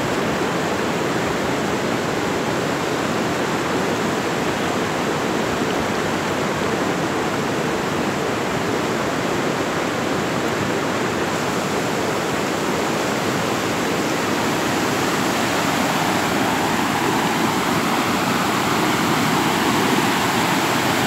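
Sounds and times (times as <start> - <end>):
floodwater rushing in a creek: 0.0 - 21.0.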